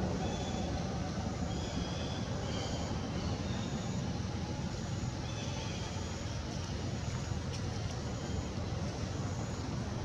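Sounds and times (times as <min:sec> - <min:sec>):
low rumbling background noise: 0:00.0 - 0:10.0.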